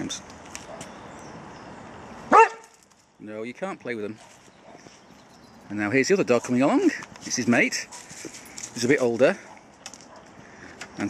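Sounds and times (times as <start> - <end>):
dog barking: 2.3 - 2.7, 9.4 - 10.3.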